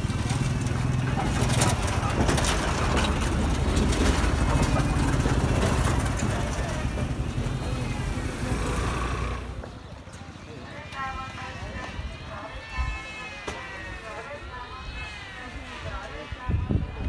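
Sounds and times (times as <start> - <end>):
low street rumble: 0.0 - 17.0
distant people's voices: 0.7 - 17.0.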